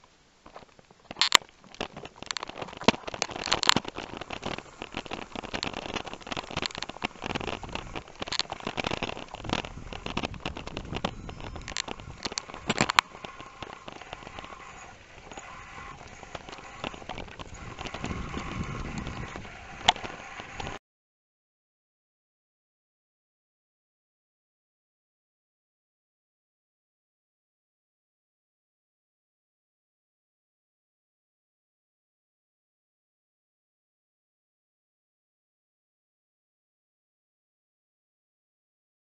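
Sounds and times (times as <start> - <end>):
bicycle rattling over bumps: 0.5 - 20.8
bicycle rolling rushing noise: 1.1 - 20.8
wind on microphone: 2.6 - 20.8.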